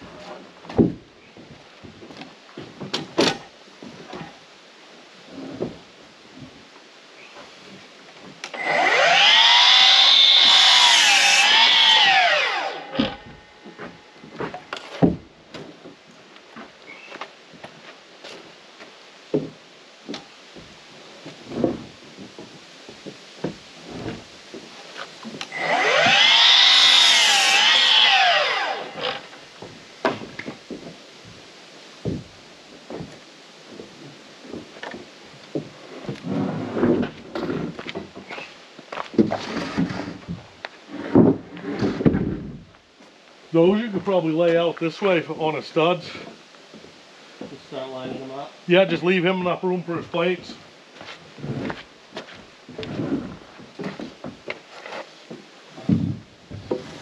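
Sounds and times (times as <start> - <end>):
boards knocking and clattering: 0.1 - 4.4, 13.0 - 16.8, 19.3 - 26.6, 29.0 - 31.4, 32.0 - 42.7, 51.4 - 57.0
miter saw cutting wood: 8.4 - 14.0, 25.4 - 29.5.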